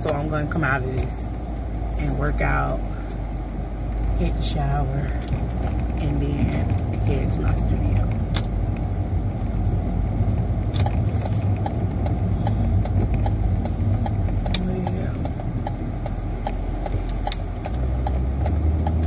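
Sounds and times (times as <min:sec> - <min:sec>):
car engine and tyre rumble: 0:00.0 - 0:19.0.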